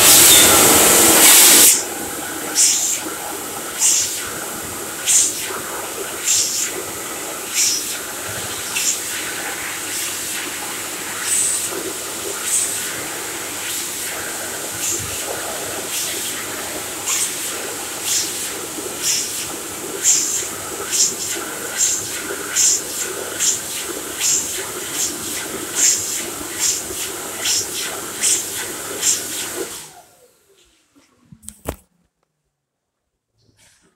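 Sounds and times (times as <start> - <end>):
sharp bursts of hiss: 0.0 - 1.9
hand dryer rushing air: 0.0 - 30.4.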